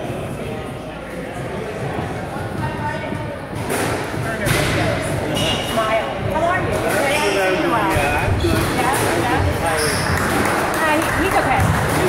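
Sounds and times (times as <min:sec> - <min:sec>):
chatter of voices: 0:00.0 - 0:12.0
squash ball hitting walls: 0:08.2 - 0:12.0.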